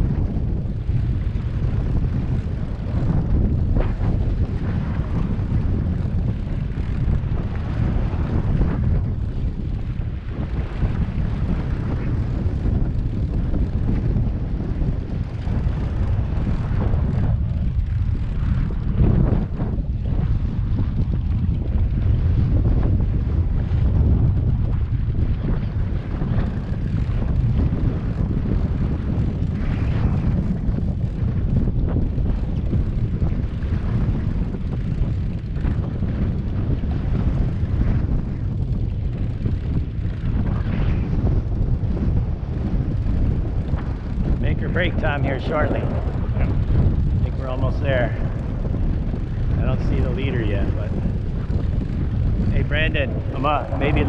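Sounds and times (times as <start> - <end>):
wind buffeting microphone: 0.0 - 54.0
outboard motors droning: 0.7 - 31.8, 32.5 - 54.0.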